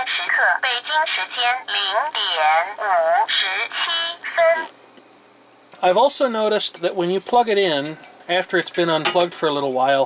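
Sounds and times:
synthetic voice through small speaker: 0:00.0 - 0:04.7.

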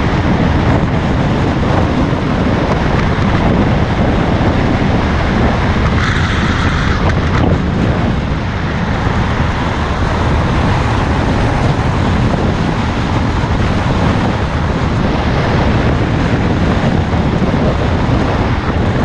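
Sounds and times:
scooter engine running: 0:00.0 - 0:19.0
wind on microphone: 0:00.0 - 0:19.0.

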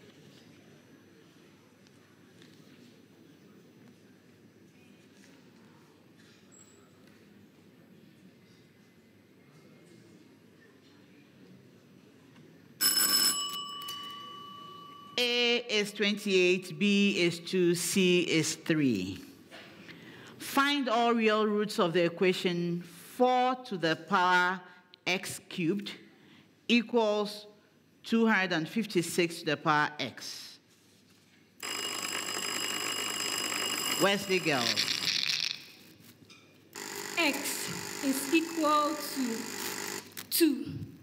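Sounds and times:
electronic bell ringing: 0:12.8 - 0:15.7, 0:31.6 - 0:35.2, 0:36.8 - 0:40.1.

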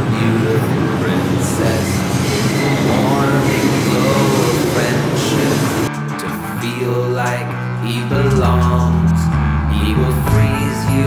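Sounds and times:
subway train rumble and hum: 0:00.0 - 0:05.9.

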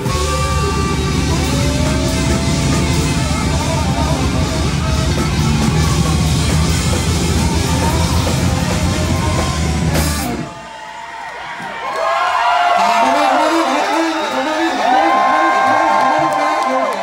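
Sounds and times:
bouncing bass line: 0:00.0 - 0:10.5
saxophone lead lines: 0:00.0 - 0:10.6, 0:12.6 - 0:17.0
live rock band playing: 0:00.0 - 0:10.7, 0:12.6 - 0:16.7
crowd whooping: 0:00.0 - 0:17.0.

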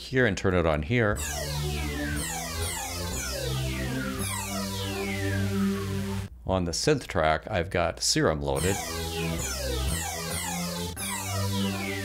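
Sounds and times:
downward-sweeping synth tones: 0:01.2 - 0:06.3, 0:08.6 - 0:12.0
low held synth notes: 0:01.2 - 0:06.3, 0:08.6 - 0:12.0.

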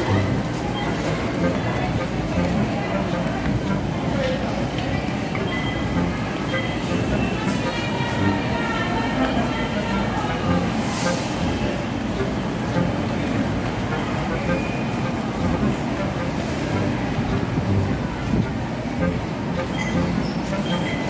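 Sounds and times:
indistinct voices: 0:00.0 - 0:21.0
traffic noise: 0:00.0 - 0:21.0.

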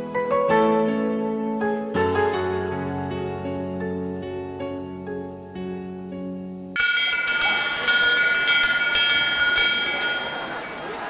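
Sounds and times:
soft piano music: 0:00.0 - 0:11.0
school bell ringing: 0:06.8 - 0:11.0.

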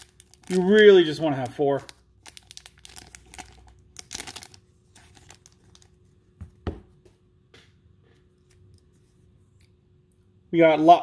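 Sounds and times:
foil wrapper crinkling: 0:00.0 - 0:06.0.

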